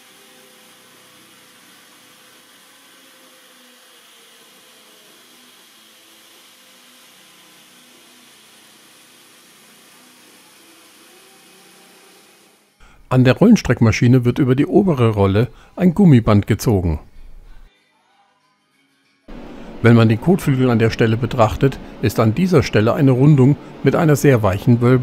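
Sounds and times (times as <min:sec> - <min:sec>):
electric metal shear whirring: 0:00.0 - 0:12.8.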